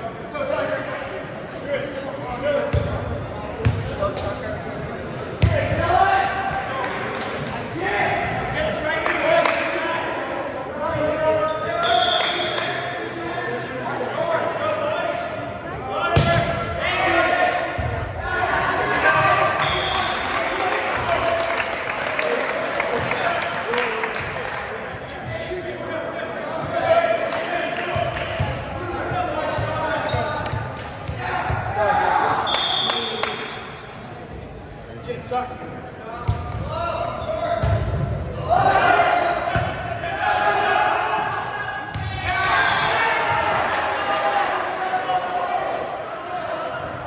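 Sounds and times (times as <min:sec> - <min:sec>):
voices calling out in gym: 0:00.0 - 0:47.0.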